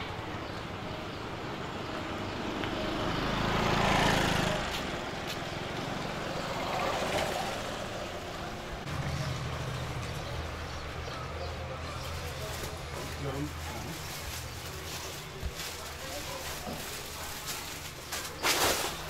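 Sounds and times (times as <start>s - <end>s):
steady low traffic hum: 0.0s - 19.0s
vehicle passing: 0.4s - 18.1s.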